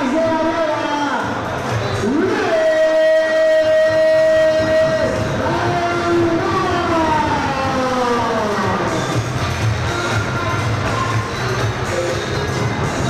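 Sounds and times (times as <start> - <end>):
announcer calling over pa: 0.0 - 1.4, 2.0 - 9.1.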